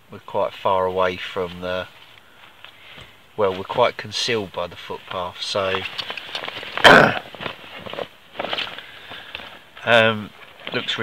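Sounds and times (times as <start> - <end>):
man coughing: 6.8 - 7.3.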